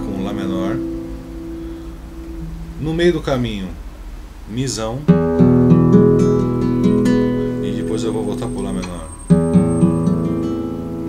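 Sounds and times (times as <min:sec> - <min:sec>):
classical guitar chord strummed: 0:00.0 - 0:03.3, 0:05.1 - 0:11.0.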